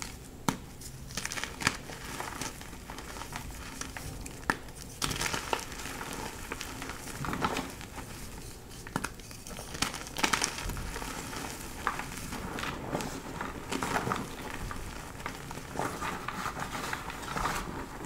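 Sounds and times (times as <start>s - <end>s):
chalk crunching and rustling: 0.0s - 18.0s.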